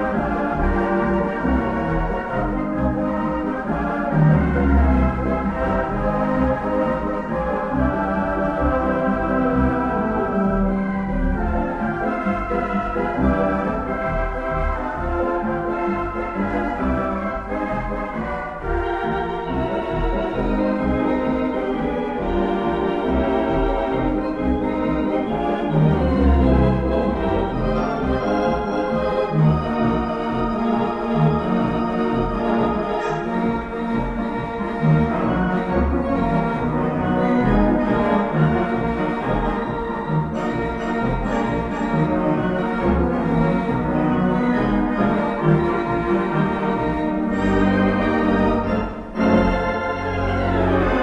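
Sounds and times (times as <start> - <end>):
pipe organ playing chords: 0.0 - 51.0.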